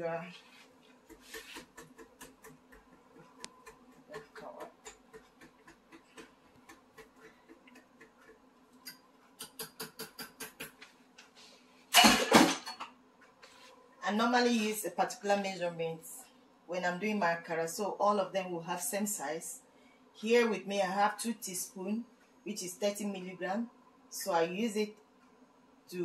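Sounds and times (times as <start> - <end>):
faint steady hum: 0.0 - 26.0
fast taps on bowl: 1.1 - 8.4, 9.4 - 10.8.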